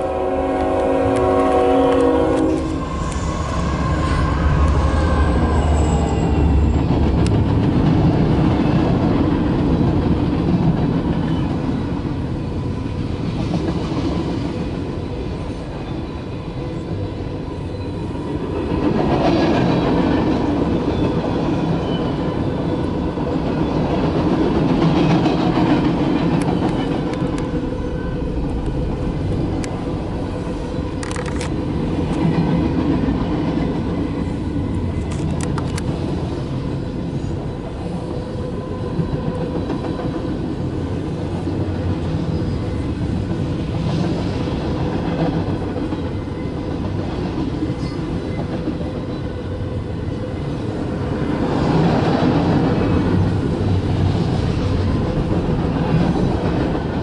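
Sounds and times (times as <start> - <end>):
train horn: 0.0 - 6.7
train wheels rumbling on rail: 0.0 - 57.0.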